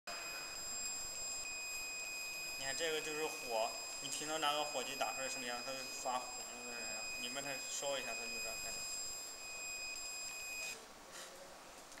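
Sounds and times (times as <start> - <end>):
laser marking machine tone: 0.1 - 10.8.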